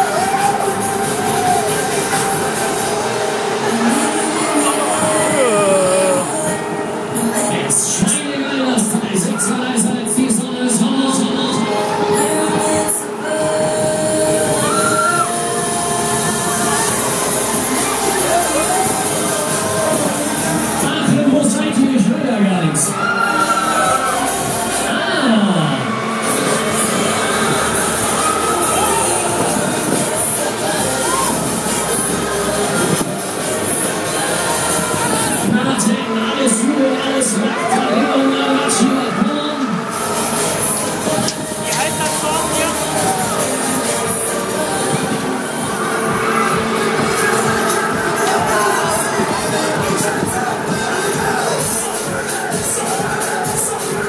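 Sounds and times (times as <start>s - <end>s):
fairground ride rumbling: 0.0s - 54.0s
loud fairground music: 0.0s - 54.0s.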